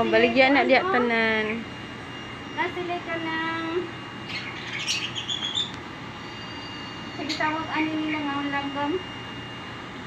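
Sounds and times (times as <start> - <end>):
lovebirds chirping: 4.2 - 7.9.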